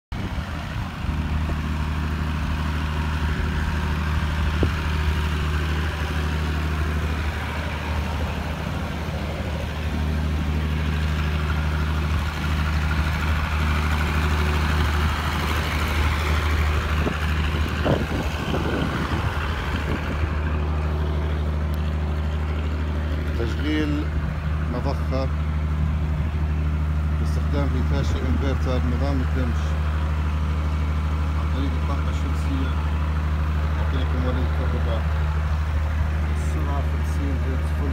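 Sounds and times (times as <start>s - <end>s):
diesel generator running: 0.1s - 37.9s.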